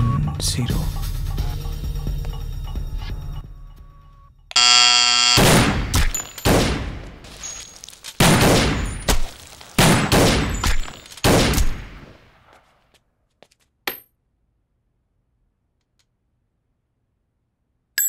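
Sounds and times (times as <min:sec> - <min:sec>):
electric doorbell buzzing: 0:04.5 - 0:05.5
pistol shots: 0:05.4 - 0:07.2, 0:08.2 - 0:12.4.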